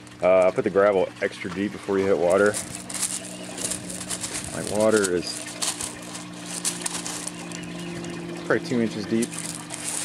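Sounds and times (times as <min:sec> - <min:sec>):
steady low hum: 0:00.0 - 0:10.0
gravel clattering and grinding: 0:01.6 - 0:10.0.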